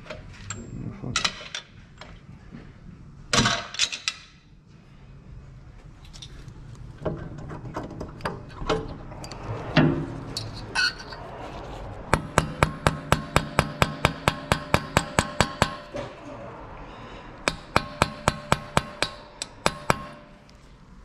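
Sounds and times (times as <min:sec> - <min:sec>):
hammer striking metal hub: 0:12.1 - 0:16.1, 0:17.4 - 0:20.5.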